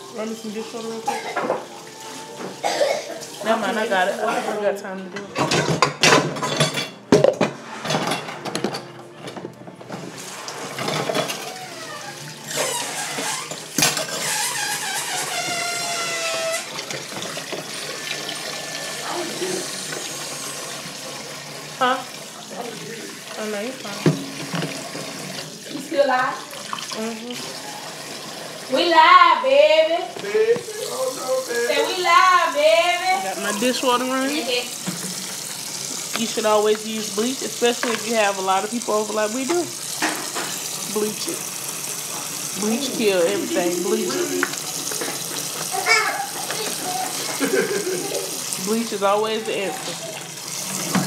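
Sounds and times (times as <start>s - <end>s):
tap running into sink: 8.5s - 21.6s, 22.2s - 25.7s, 33.3s - 48.8s, 49.7s - 51.0s.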